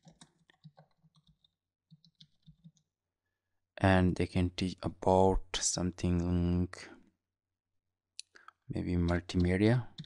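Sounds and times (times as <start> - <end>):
computer keyboard typing: 0.0 - 2.9, 9.0 - 10.0.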